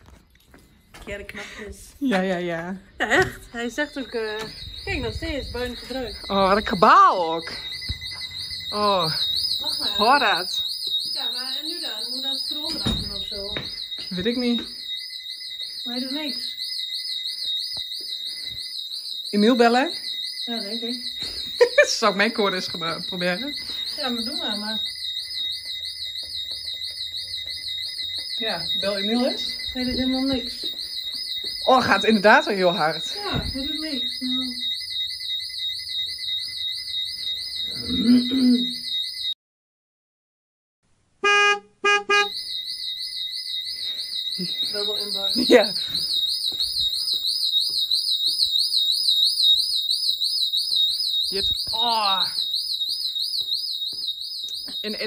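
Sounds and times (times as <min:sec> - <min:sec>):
intruder alarm siren warbling: 0:03.3 - 0:39.4, 0:41.3 - 0:55.0.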